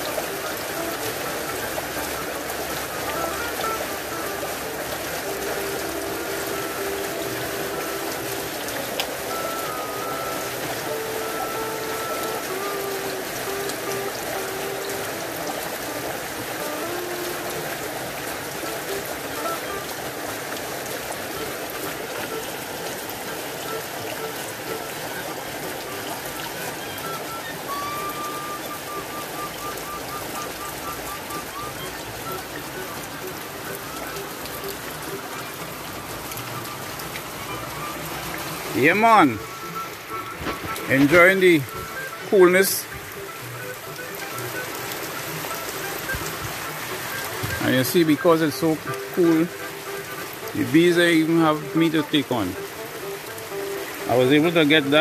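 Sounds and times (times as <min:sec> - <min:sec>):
faint music of held notes: 0:00.0 - 0:55.0
heavy rain: 0:00.0 - 0:55.0.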